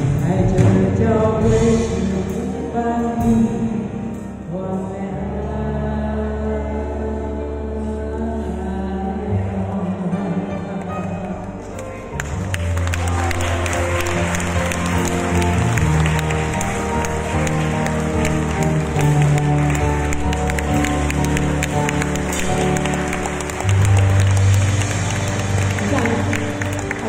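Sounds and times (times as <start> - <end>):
live band playing chords: 0.0 - 5.8, 10.0 - 27.0.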